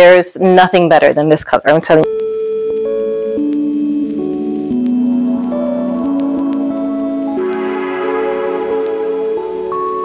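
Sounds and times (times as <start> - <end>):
soft ambient music bell-like tones: 4.4 - 10.0.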